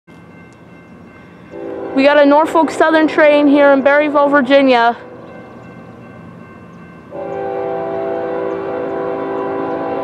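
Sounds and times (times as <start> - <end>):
locomotive horn chord: 1.5 - 4.4, 7.1 - 10.0.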